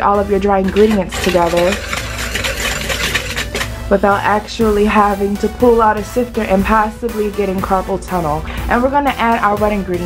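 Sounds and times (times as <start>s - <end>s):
wire whisk scraping flour in bowl: 0.4s - 4.0s.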